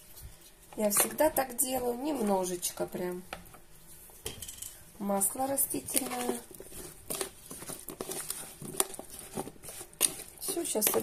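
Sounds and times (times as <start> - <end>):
soft wet shuffling of potato slices: 0.0 - 4.2, 5.1 - 11.0.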